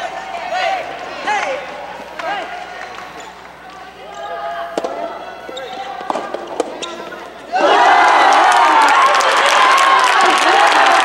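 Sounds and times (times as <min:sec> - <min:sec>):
crowd shouting and cheering: 0:00.0 - 0:11.0
voices in hall: 0:00.0 - 0:11.0
ball popping off rackets: 0:06.0 - 0:06.9.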